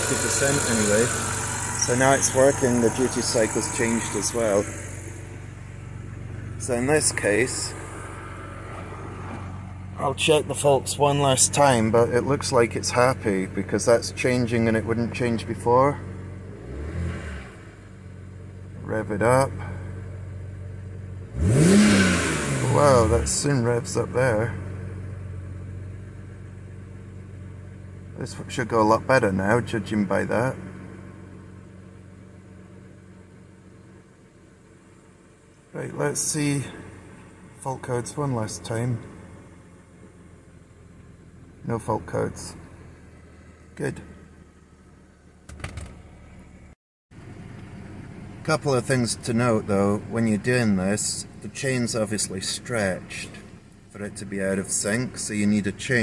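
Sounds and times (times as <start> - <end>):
car engine idling from inside cabin: 0.0 - 8.7, 9.4 - 16.5, 17.8 - 21.4, 22.8 - 56.0
knocks and clicks: 45.5 - 46.0.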